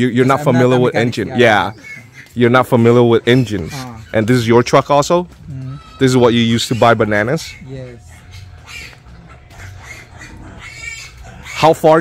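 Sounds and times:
farm animals calling: 0:00.0 - 0:12.0.

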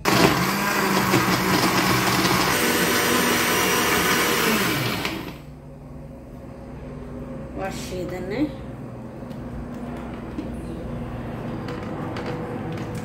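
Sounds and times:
electric blender running: 0:00.0 - 0:05.5.

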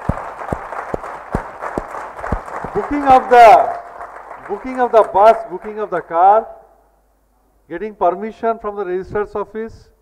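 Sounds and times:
sharp single claps: 0:00.0 - 0:06.1
audience applauding: 0:00.0 - 0:06.2.

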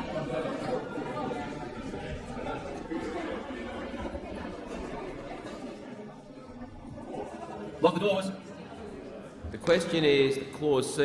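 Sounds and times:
murmur of overlapping voices: 0:00.0 - 0:11.0.

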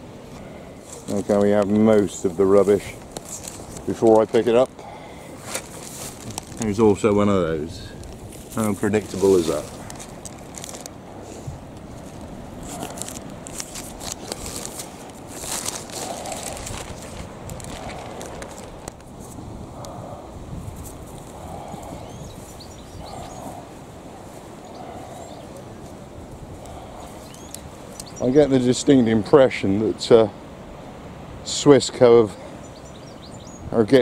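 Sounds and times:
rush of outdoor air: 0:00.0 - 0:34.0
plastic bag crinkling: 0:05.4 - 0:07.0, 0:08.0 - 0:11.0, 0:11.9 - 0:19.1.

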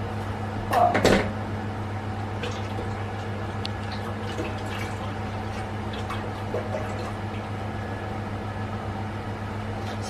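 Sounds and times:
electric cooktop humming: 0:00.0 - 0:10.0.

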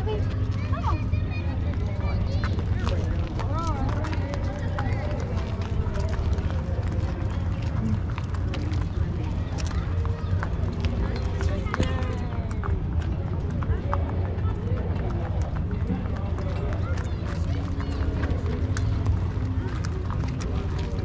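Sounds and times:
footsteps: 0:00.0 - 0:21.0
hooves on dirt: 0:00.0 - 0:21.0
indistinct voices: 0:00.0 - 0:21.0.

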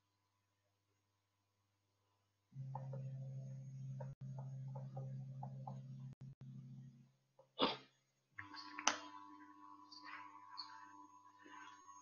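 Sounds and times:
low steady hum: 0:01.9 - 0:07.3, 0:08.0 - 0:12.0
person sneezing: 0:07.6 - 0:07.9.

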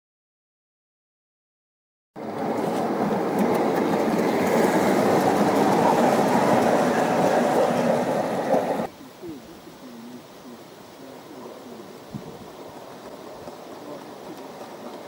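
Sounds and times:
model train wheels rumbling on rails: 0:02.2 - 0:08.9, 0:11.4 - 0:15.0.

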